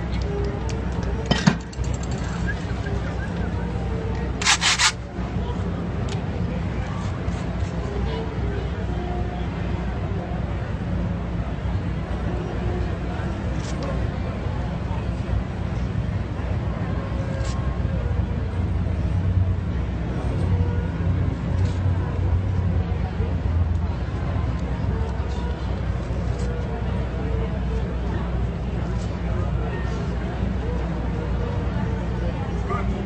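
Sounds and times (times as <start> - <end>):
low street rumble: 0.0 - 33.0
sharp scratch: 4.4 - 5.0.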